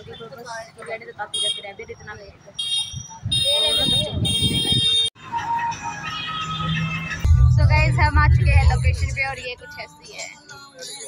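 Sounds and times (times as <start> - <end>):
street noise: 0.0 - 11.0
steady hum: 7.3 - 9.4.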